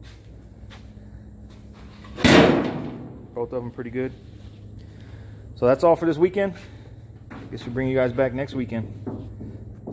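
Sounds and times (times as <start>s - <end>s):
sudden loud bang: 2.2s - 3.3s.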